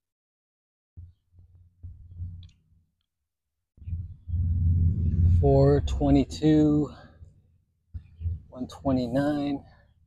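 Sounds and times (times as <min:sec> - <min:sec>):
low rumbling on microphone: 0:03.8 - 0:08.7.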